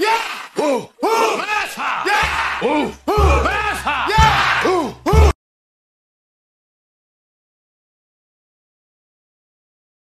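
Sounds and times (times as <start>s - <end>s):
shouted vocal chant: 0.0s - 5.4s.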